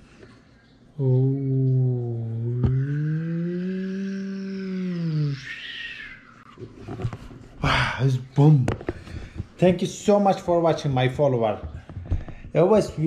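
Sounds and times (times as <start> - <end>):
man's drawn-out ohhh: 1.0 - 6.2.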